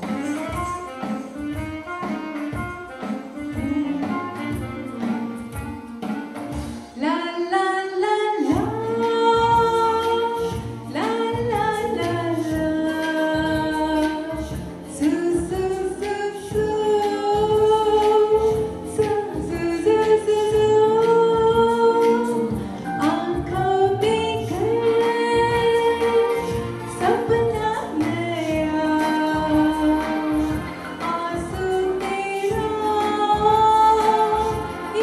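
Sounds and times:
woman singing into a microphone: 0.0 - 5.6, 6.6 - 35.0
musical accompaniment with drum beat: 0.0 - 7.3, 8.4 - 35.0.

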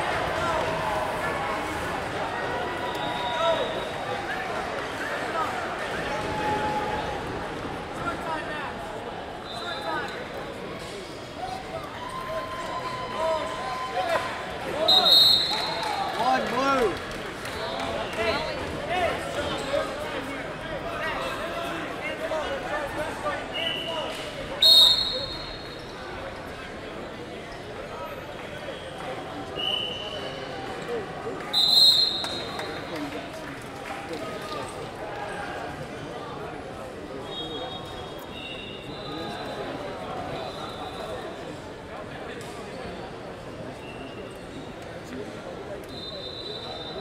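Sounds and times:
faint whistles: 2.8 - 4.2, 14.8 - 16.0, 23.5 - 26.1, 28.7 - 30.5, 31.5 - 32.8, 37.2 - 39.7, 40.3 - 41.4, 45.8 - 47.0
shrill referee's whistle blasts: 14.8 - 15.8, 24.6 - 25.8, 31.5 - 32.7, 45.9 - 47.0.

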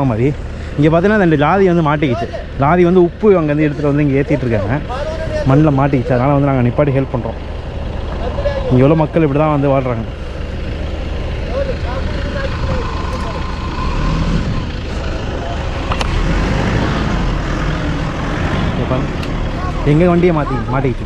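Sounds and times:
truck engine running: 0.0 - 21.0
men calling out: 3.4 - 6.7, 18.9 - 21.0.

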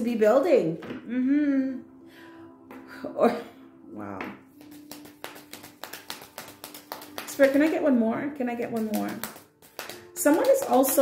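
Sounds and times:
cards being shuffled: 4.6 - 7.8, 8.6 - 11.0.

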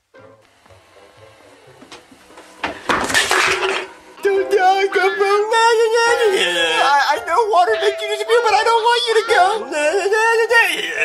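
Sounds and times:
loud crash: 2.8 - 4.0
cartoon soundtrack music: 4.0 - 10.3.

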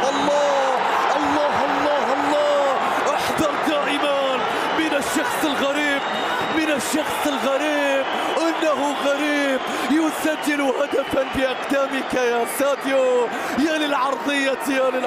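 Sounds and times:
commentator shouting excitedly: 0.0 - 15.0
stadium crowd noise: 0.0 - 15.0.

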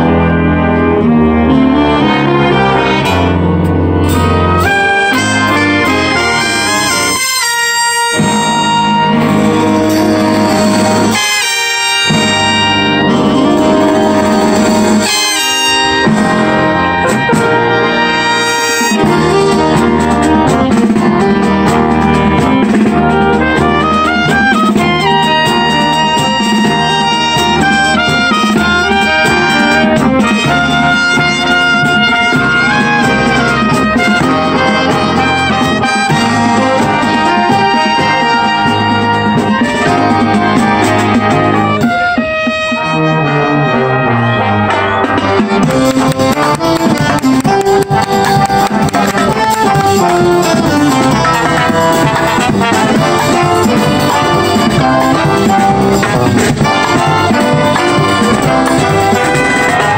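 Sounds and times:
marching brass band playing: 0.0 - 59.9.

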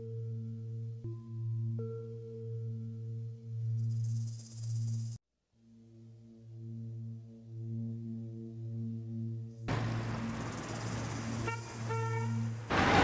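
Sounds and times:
drone-like background music: 0.0 - 13.0.

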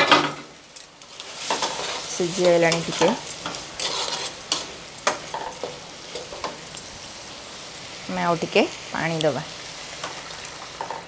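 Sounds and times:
food sizzling in a wok: 0.0 - 11.0
spatula scraping a pan: 1.1 - 6.6.

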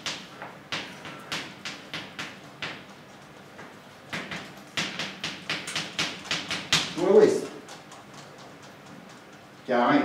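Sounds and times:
chalk tapping on blackboard: 0.0 - 9.4.

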